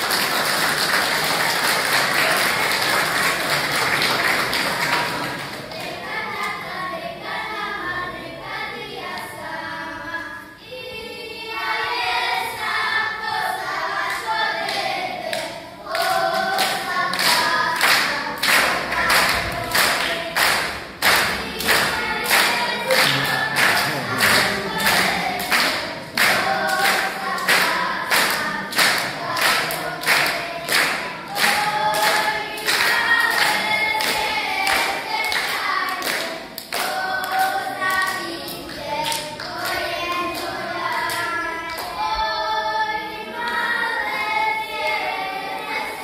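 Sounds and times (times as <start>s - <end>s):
children singing: 0.0s - 46.0s.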